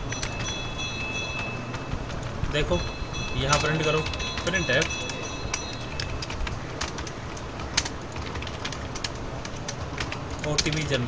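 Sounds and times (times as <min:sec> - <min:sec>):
low background noise: 0:00.0 - 0:11.0
keyboard keystrokes: 0:03.4 - 0:11.0.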